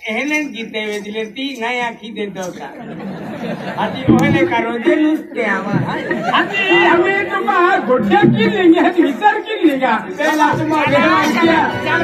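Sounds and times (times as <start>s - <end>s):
performers talking loudly: 2.4s - 12.0s.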